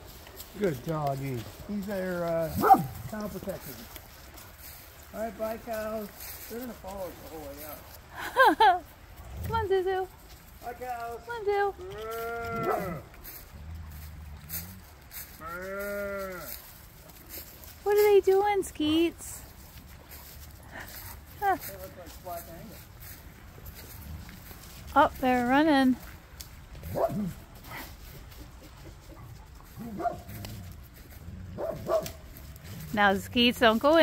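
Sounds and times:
dry leaves rustling: 0.0s - 34.0s
dog barking and whining: 2.6s - 2.9s, 12.6s - 13.0s, 29.8s - 30.3s, 31.6s - 32.1s
cow mooing: 11.8s - 14.8s, 15.4s - 16.6s.

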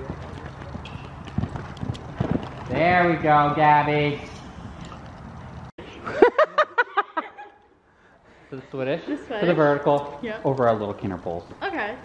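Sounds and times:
horse hoofbeats on sand: 0.0s - 4.2s.

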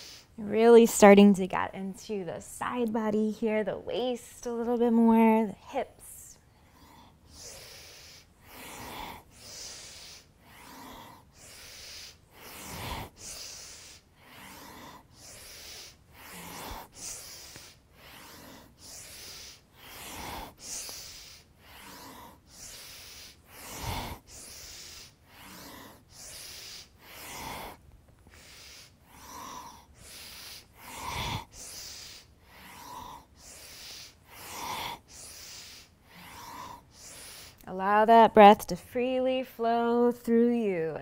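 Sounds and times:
woman breathing rhythmically: 0.0s - 0.6s, 4.2s - 37.7s.

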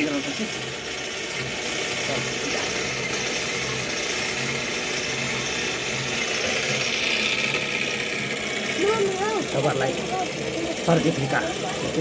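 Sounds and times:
sewing machine running: 0.0s - 12.0s.

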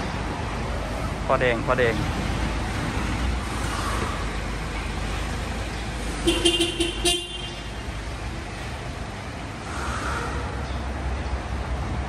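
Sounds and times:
truck horn toot: 6.2s - 7.6s.

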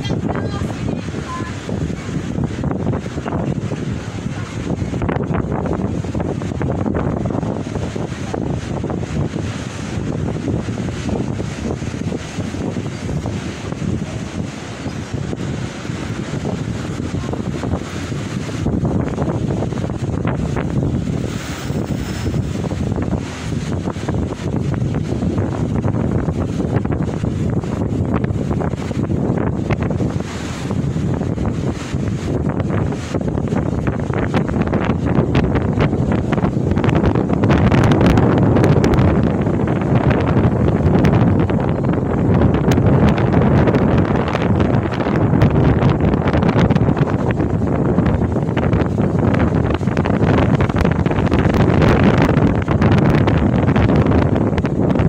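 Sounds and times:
choppy sea breaking: 0.0s - 55.0s
strong wind buffeting microphone: 0.0s - 55.0s.

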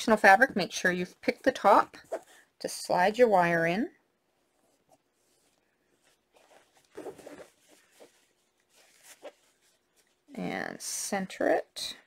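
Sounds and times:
fabric rustling and scraping: 4.2s - 10.8s.

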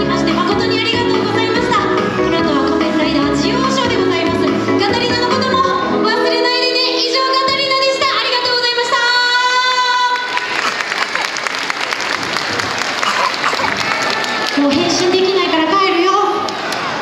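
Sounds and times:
backing music: 0.0s - 9.5s
woman singing pop song: 0.0s - 10.2s
audience applauding: 10.0s - 15.4s.

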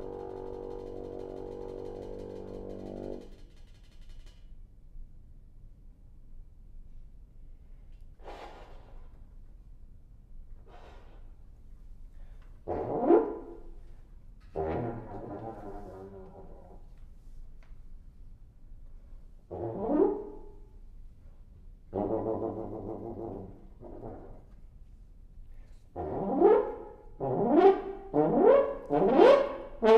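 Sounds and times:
french horn playing: 0.0s - 3.3s
faint breathy sounds: 10.6s - 12.6s.

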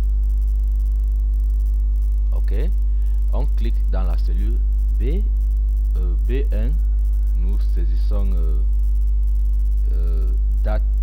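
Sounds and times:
electrical mains hum: 0.0s - 11.0s
faint hiss: 0.0s - 11.0s.

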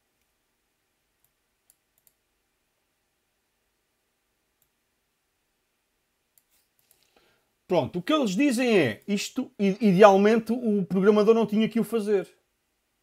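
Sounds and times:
very faint clicks: 1.2s - 2.2s, 4.6s - 4.8s, 6.3s - 7.3s.

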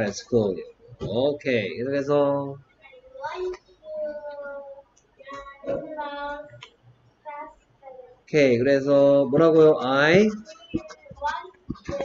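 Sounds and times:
child singing sing-song phrases: 3.2s - 6.6s, 10.5s - 12.0s.

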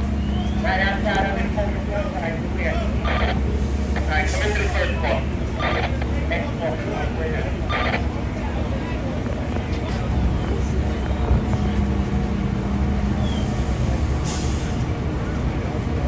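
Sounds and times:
diesel engines idling: 0.0s - 16.0s.

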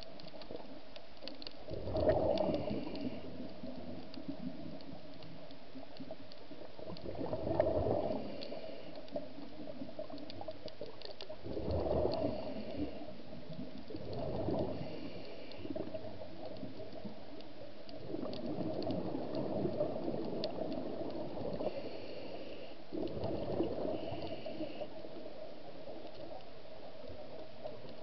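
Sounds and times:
underwater exhaled bubbles gurgling: 0.0s - 28.0s.

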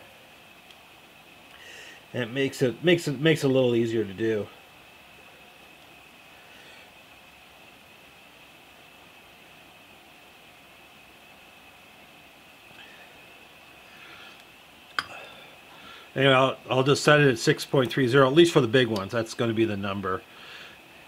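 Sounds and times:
faint steady high hum: 0.0s - 21.0s.

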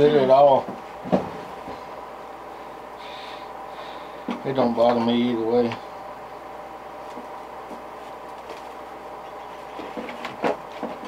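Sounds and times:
low hum and faint hiss: 0.0s - 11.0s.

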